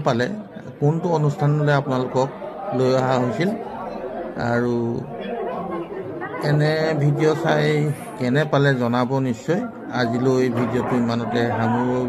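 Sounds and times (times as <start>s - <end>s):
chatter of several voices: 0.0s - 12.0s.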